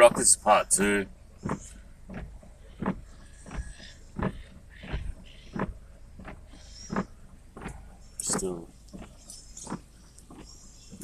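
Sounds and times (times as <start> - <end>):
windscreen wipers rubbing: 0.0 - 11.0.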